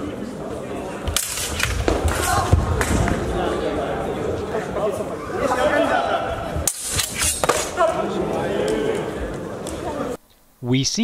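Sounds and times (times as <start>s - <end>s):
people chattering in echoing hall: 0.0s - 10.8s.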